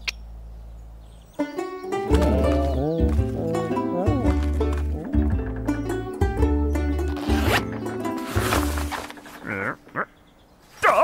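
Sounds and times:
background music with bass: 1.4 - 9.6
tent zipper pulled open: 7.1 - 9.1.

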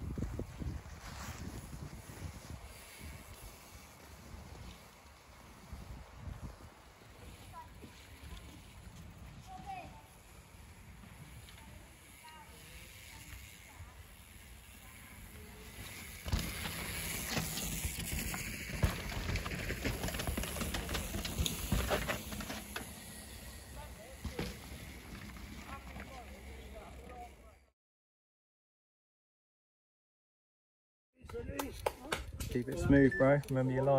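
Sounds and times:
mountain bike tyres on dirt trail: 0.0 - 27.7
bike clicking and rattling: 0.5 - 27.4.

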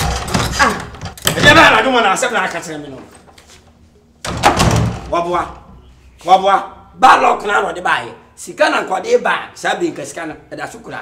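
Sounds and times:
wooden door slamming: 4.2 - 5.2.

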